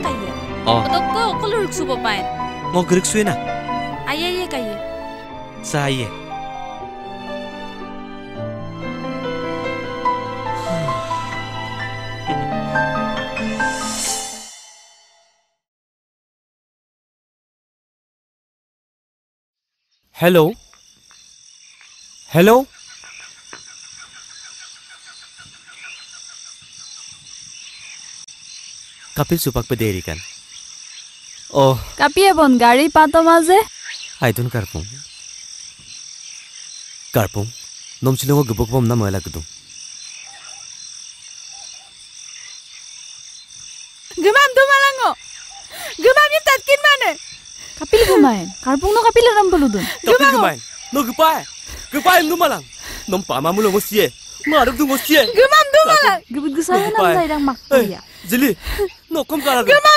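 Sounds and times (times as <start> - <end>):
frogs and insects chorus: 0.0 - 13.3, 19.8 - 59.9.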